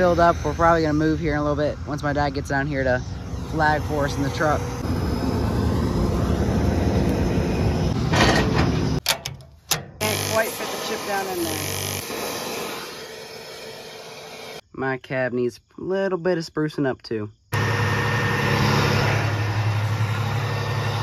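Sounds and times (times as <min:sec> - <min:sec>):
combine diesel rumble: 0:00.0 - 0:11.6, 0:17.6 - 0:21.0.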